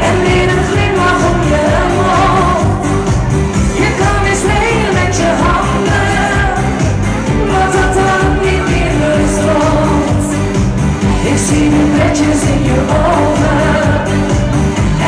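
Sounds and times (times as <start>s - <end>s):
amplified pop backing track: 0.0s - 15.0s
woman singing into microphone: 0.0s - 15.0s.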